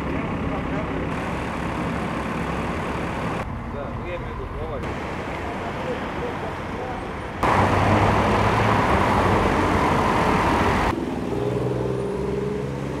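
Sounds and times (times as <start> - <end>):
engine running steadily: 0.0 - 9.2
street traffic: 0.0 - 13.0.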